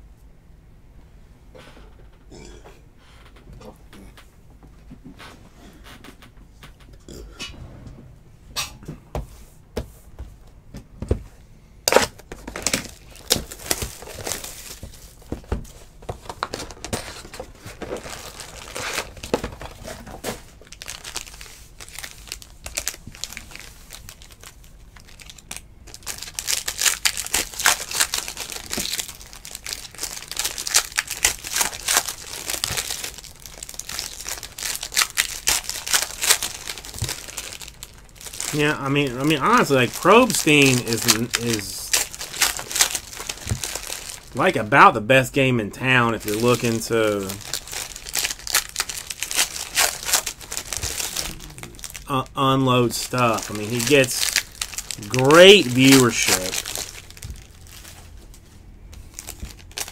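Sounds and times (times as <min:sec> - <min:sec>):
clicks and knocks of card packs: 0:11.9 - 0:24.4, 0:25.0 - 0:44.4, 0:52.9 - 0:58.0
foil wrappers crinkling and tearing: 0:11.9 - 0:59.9.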